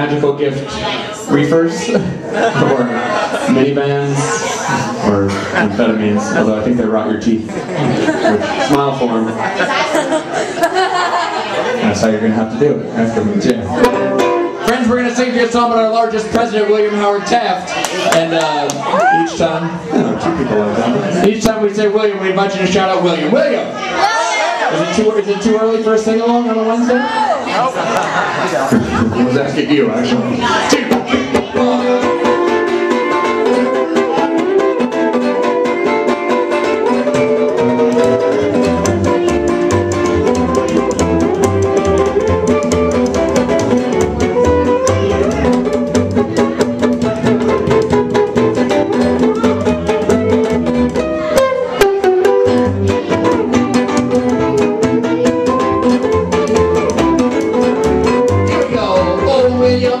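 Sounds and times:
plucked upright bass: 11.0s - 16.6s, 28.7s - 60.0s
strummed guitar: 11.7s - 17.3s, 28.7s - 60.0s.

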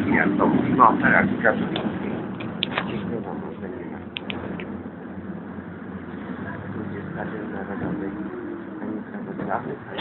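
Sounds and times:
bus road rumble: 0.0s - 10.0s.

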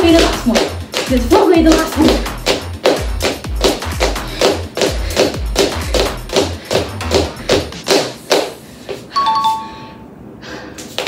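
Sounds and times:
two-note ding-dong chime: 9.2s - 10.0s.

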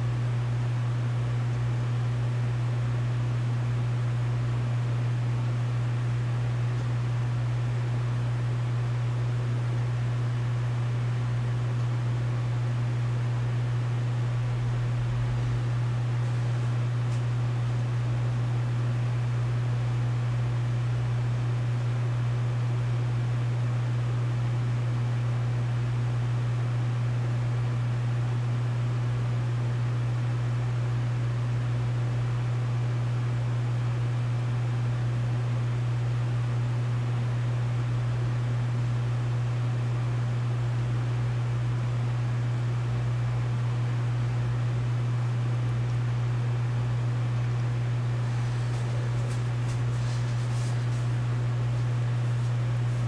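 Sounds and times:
low hum: 13.6s - 18.1s.

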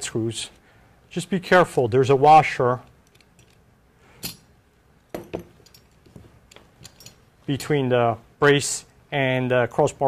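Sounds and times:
small metal parts clinking: 3.0s - 4.5s, 5.1s - 7.3s.

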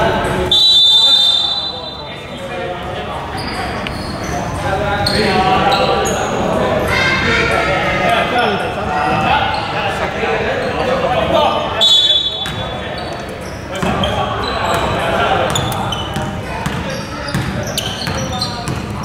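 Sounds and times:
players' voices: 0.0s - 19.0s
basketball bouncing on wooden floor: 16.2s - 19.0s.

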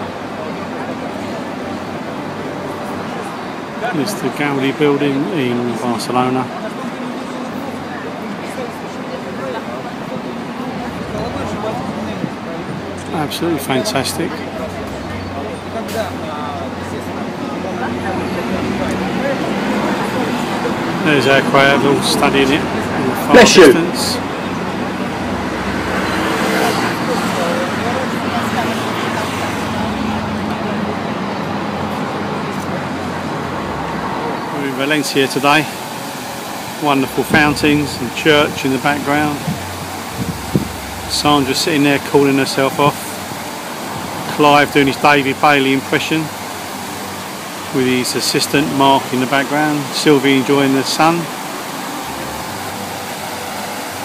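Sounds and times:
people talking: 0.0s - 25.6s, 26.2s - 31.0s, 34.5s - 35.8s, 36.8s - 43.2s, 44.2s - 46.5s, 47.7s - 51.4s
city street traffic: 0.0s - 54.0s
fountain water splashing: 0.0s - 54.0s.

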